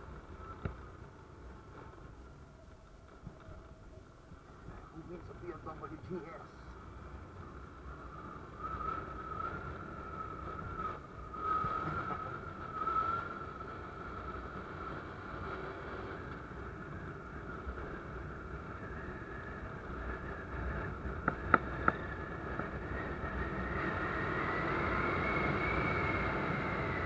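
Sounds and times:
motorcycle engine whine: 0:00.0 - 0:27.0
wind and road noise: 0:00.0 - 0:27.0.

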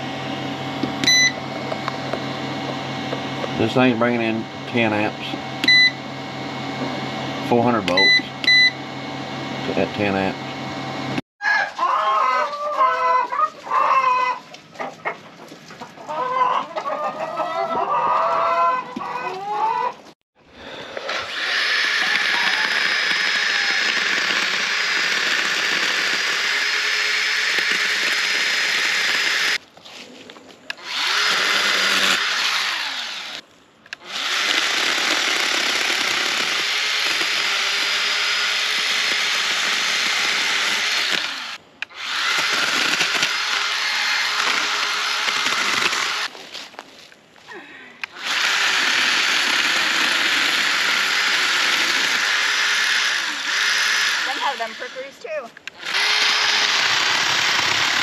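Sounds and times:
cordless power saw cutting brush: 0:00.0 - 0:11.2, 0:20.6 - 0:29.6, 0:30.7 - 0:46.4, 0:48.0 - 0:58.0.

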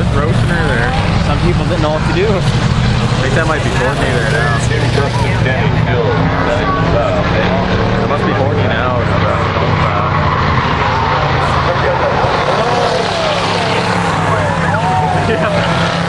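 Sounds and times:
race car engines droning: 0:00.0 - 0:16.0.

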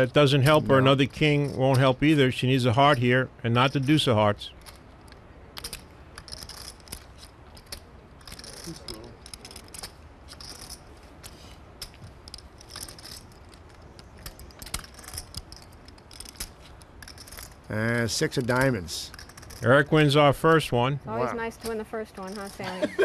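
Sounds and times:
poker chips clicking and rattling: 0:03.7 - 0:17.7, 0:22.2 - 0:22.8.

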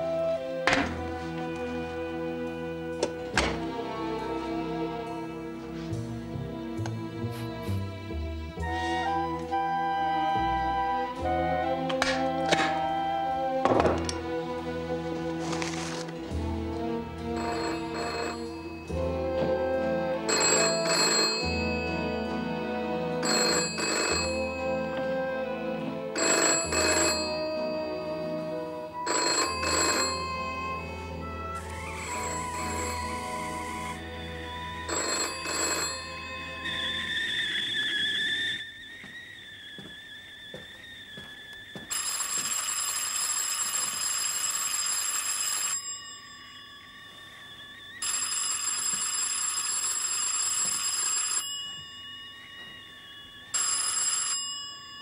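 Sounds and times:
background music: 0:00.0 - 0:38.1
electric doorbell ringing: 0:17.3 - 0:22.5, 0:23.2 - 0:25.2, 0:26.1 - 0:28.3, 0:28.9 - 0:31.0, 0:31.6 - 0:33.6, 0:34.5 - 0:36.9, 0:41.9 - 0:47.1, 0:48.0 - 0:55.0
man whistling a tune: 0:36.6 - 0:41.9, 0:52.1 - 0:53.6.

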